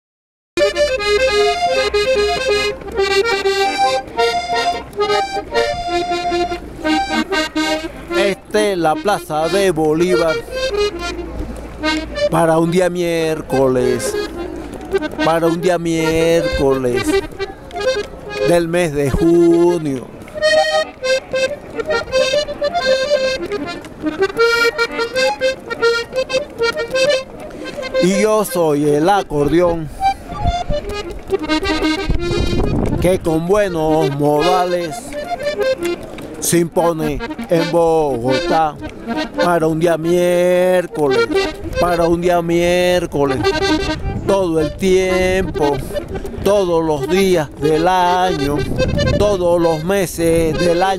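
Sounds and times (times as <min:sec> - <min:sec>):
accordion melody: 0:00.6 - 0:50.9.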